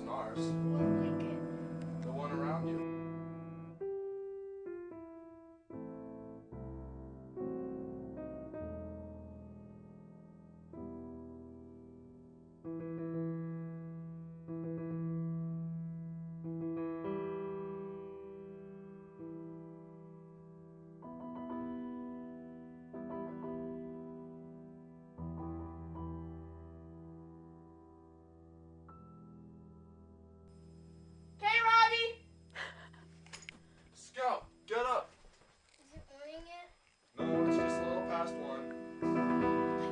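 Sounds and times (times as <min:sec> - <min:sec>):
soft piano chords: 0:00.0 - 0:31.4, 0:37.2 - 0:39.9
steady low hum: 0:30.2 - 0:39.9.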